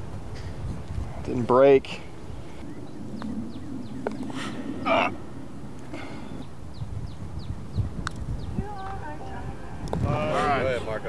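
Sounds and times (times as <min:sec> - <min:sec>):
birds chirping: 0:00.0 - 0:11.0
low outdoor background: 0:00.0 - 0:11.0.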